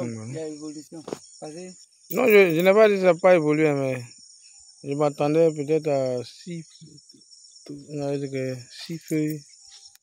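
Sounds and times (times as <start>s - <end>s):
insect chorus: 0.0s - 10.0s
person speaking: 2.1s - 4.1s.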